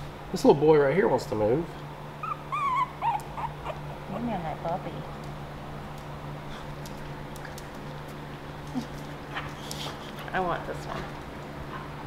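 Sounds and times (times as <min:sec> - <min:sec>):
steady low hum: 0:00.0 - 0:12.0
puppies squeaking and whimpering: 0:02.1 - 0:04.4.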